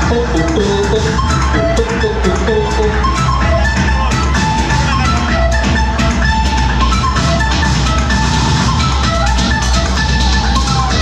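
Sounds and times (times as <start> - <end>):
bell-like melody: 0.0 - 3.6
dance music with driving beat: 0.0 - 11.0.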